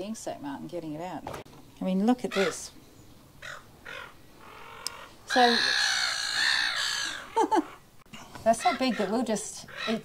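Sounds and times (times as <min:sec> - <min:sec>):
crow cawing: 0:02.3 - 0:02.7, 0:03.4 - 0:07.9, 0:08.5 - 0:10.0.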